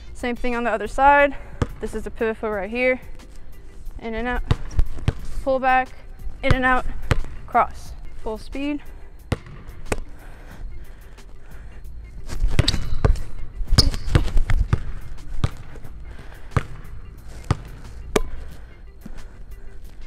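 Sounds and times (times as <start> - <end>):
basketball bouncing on wooden floor: 9.3 - 9.6.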